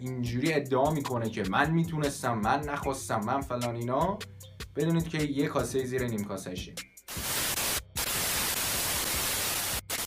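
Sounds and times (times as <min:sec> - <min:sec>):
static hiss: 0:07.1 - 0:10.0.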